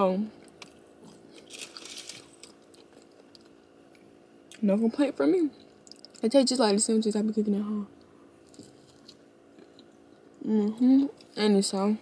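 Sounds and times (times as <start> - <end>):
crunchy chewing of toasted bread: 0.3 - 4.6, 8.4 - 10.3.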